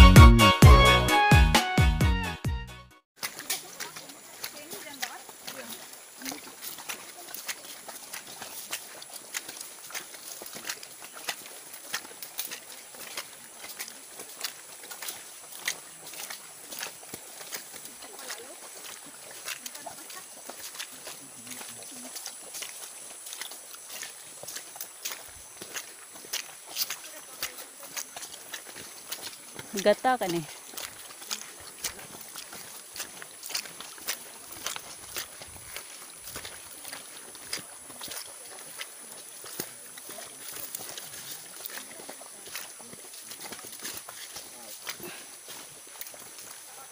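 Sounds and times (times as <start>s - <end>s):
footsteps on leafy dirt trail: 3.2s - 46.9s.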